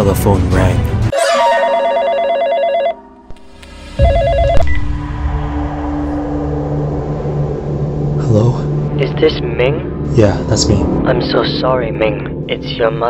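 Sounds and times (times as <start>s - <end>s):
telephone ringing: 1.1s - 3.2s, 4.0s - 4.7s.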